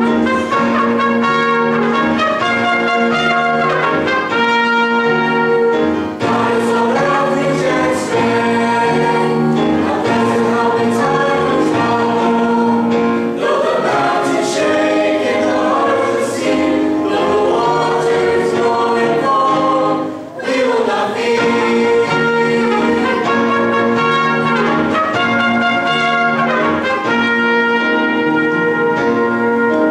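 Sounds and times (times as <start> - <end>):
mixed choir singing: 6.2 - 27.4.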